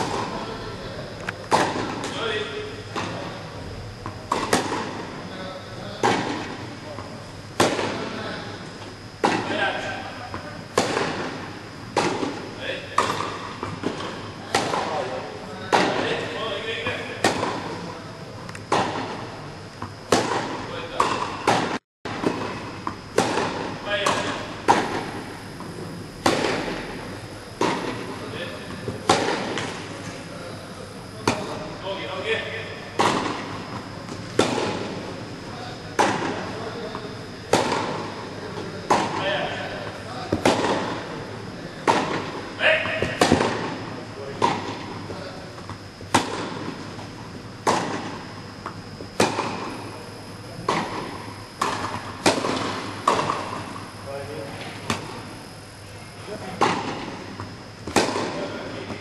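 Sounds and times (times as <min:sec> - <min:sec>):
tennis ball struck by rackets: 0:01.5 - 0:02.2, 0:04.0 - 0:05.2, 0:07.6 - 0:08.1, 0:10.7 - 0:15.0, 0:17.2 - 0:17.8, 0:19.8 - 0:27.0, 0:27.6 - 0:29.8, 0:33.0 - 0:35.0, 0:37.5 - 0:38.3, 0:38.9 - 0:39.2, 0:40.3 - 0:41.1, 0:41.8 - 0:43.8, 0:44.4 - 0:45.0, 0:45.6 - 0:49.9, 0:50.6 - 0:53.8, 0:54.6 - 0:55.3, 0:56.6 - 0:58.4
tennis ball bouncing on court: 0:13.0 - 0:15.0, 0:19.8 - 0:26.9, 0:44.4 - 0:45.0, 0:45.6 - 0:49.8, 0:50.6 - 0:53.8.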